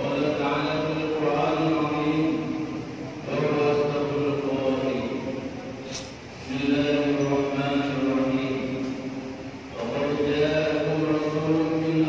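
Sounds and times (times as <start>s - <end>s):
men chanting a prayer: 0.0s - 5.5s, 6.4s - 12.0s
man leading on microphone: 0.0s - 12.0s.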